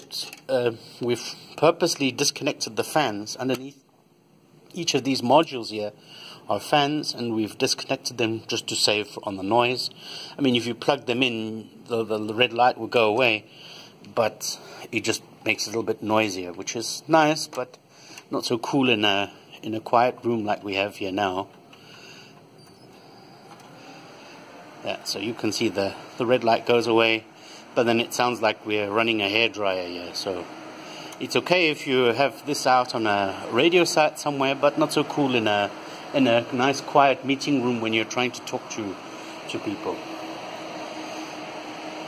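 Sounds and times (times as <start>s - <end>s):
faint steady hum: 0.0s - 42.0s
cooling fans whooshing: 4.5s - 42.0s.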